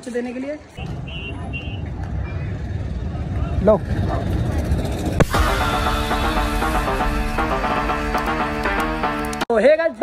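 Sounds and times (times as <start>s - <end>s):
background music: 5.2s - 9.5s.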